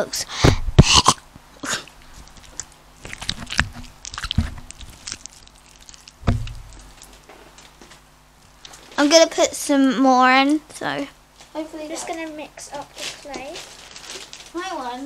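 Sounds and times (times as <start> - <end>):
slime squished by hand: 2.1 - 7.1
low thump: 6.2 - 6.9.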